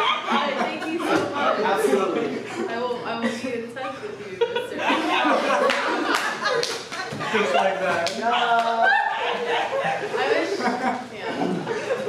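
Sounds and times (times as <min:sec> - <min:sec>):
voices: 0:00.0 - 0:12.0
audience applauding: 0:05.6 - 0:07.1.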